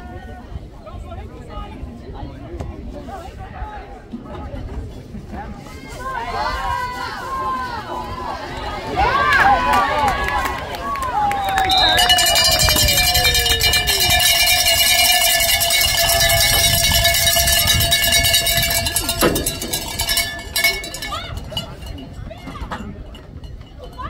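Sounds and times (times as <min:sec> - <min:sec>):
spectators cheering and shouting: 0:05.6 - 0:22.8
bell shaken rapidly: 0:12.0 - 0:22.3.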